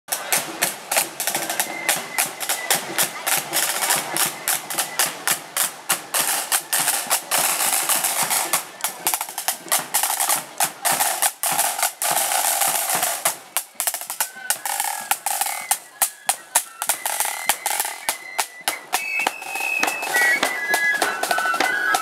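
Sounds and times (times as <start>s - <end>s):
snare drums playing rolls: 0.1s - 22.0s.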